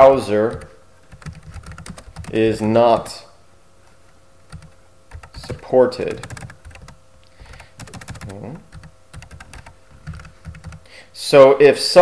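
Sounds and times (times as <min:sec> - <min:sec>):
keyboard typing: 0:00.5 - 0:03.2, 0:04.5 - 0:10.9.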